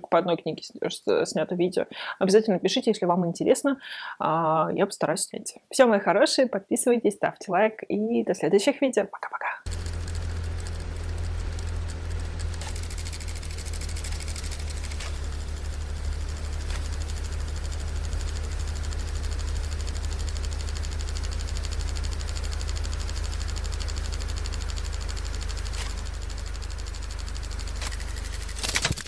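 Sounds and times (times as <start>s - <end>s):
electronic static drone: 9.7s - 29.0s
loud crackle: 9.7s - 29.0s.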